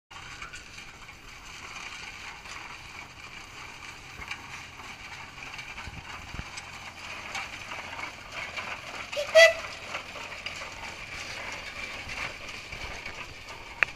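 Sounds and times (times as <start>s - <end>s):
steam traction engine clattering: 0.1s - 13.9s.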